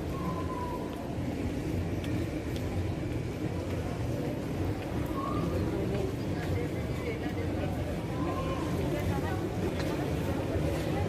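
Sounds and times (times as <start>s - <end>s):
busy hall rumble: 0.0s - 11.0s.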